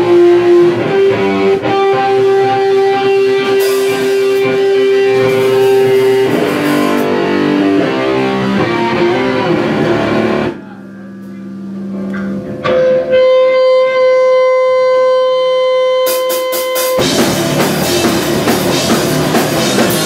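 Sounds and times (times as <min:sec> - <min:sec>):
distorted electric guitar: 0:00.0 - 0:20.0.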